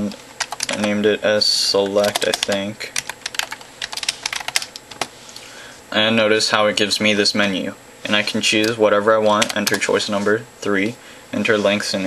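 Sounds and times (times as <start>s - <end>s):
computer keyboard keys clicking: 0.4s - 1.0s, 1.8s - 5.1s, 9.4s - 9.8s.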